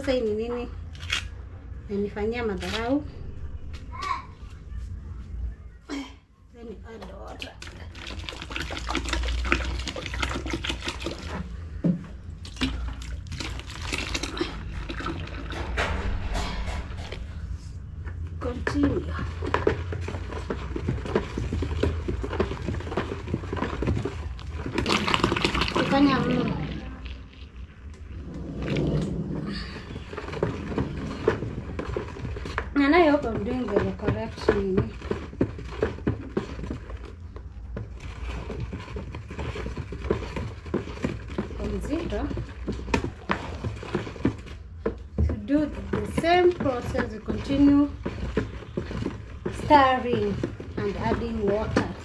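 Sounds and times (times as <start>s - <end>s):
stick stirring frothy liquid: 7.0s - 16.3s, 18.4s - 52.0s
liquid sloshing and swishing: 7.1s - 52.0s
stick knocking plastic basin: 38.4s - 52.0s.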